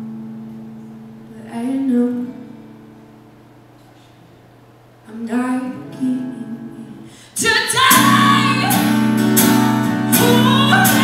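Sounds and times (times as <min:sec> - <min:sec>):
woman singing: 0:01.3 - 0:02.6, 0:05.1 - 0:11.0
acoustic guitar strumming: 0:05.7 - 0:11.0.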